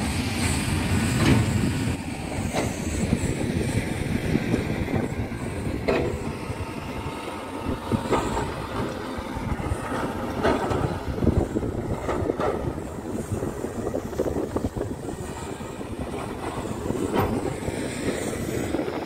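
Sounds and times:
heavy diesel machinery rumbling: 0.0 - 19.0.

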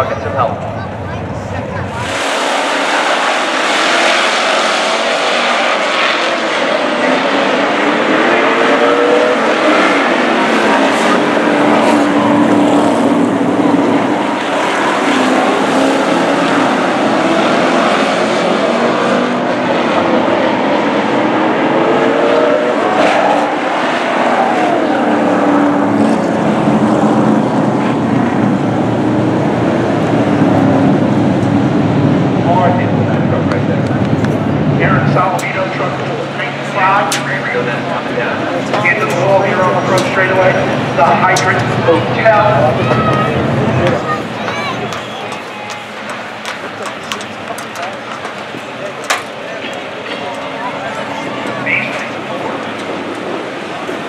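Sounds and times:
race truck engines passing: 0.0 - 54.0.

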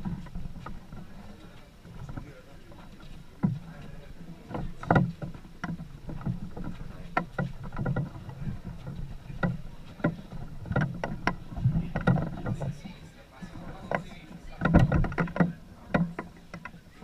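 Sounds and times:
wooden poles creaking and knocking: 0.0 - 17.0.

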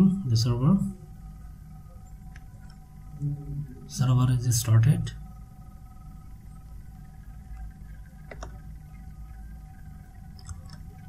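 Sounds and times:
faint low hum: 0.0 - 11.0
thin steady tones: 0.0 - 11.0.

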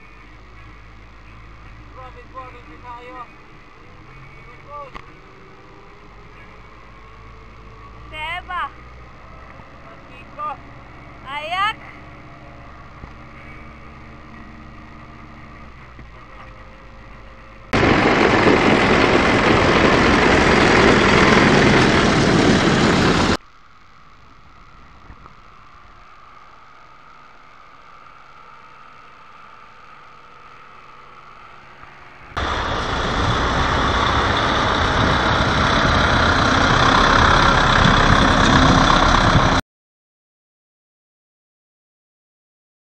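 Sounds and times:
tractor diesel engine running: 8.9 - 23.4, 30.8 - 39.6.

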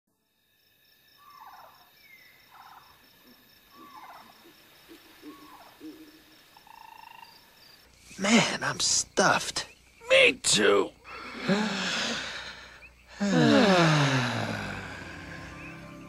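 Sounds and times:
high insect chirping: 0.2 - 16.0.

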